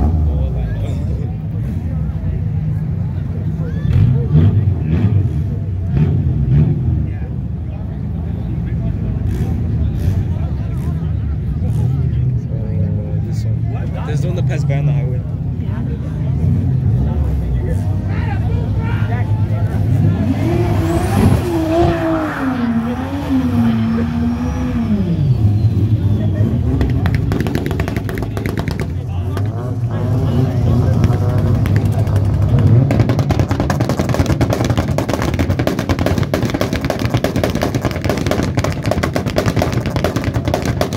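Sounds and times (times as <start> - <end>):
car engine revving: 0.0 - 40.9
car engines idling: 0.0 - 40.9.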